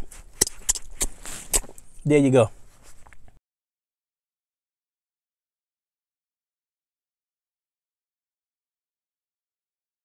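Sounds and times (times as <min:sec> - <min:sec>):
wet lip smacks: 0:00.0 - 0:01.9.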